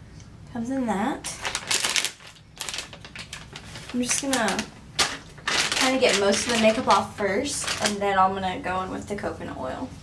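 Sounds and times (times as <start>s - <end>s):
plastic wrapper crinkling: 1.3s - 8.1s.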